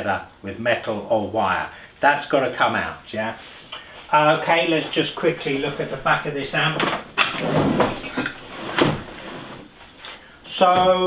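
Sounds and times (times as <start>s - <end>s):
metal case scraping on wood: 6.8s - 9.8s.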